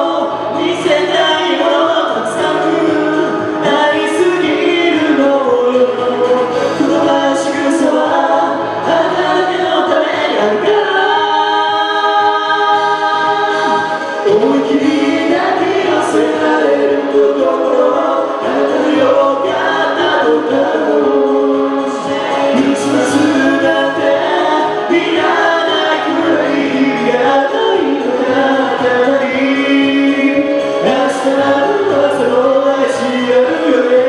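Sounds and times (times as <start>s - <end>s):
karaoke backing track: 0.0s - 34.0s
man and woman singing duet: 0.0s - 34.0s.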